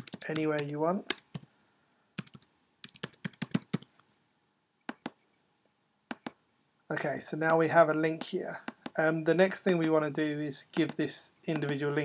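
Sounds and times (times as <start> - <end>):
typing on computer keyboard: 0.0 - 1.5, 2.2 - 3.9.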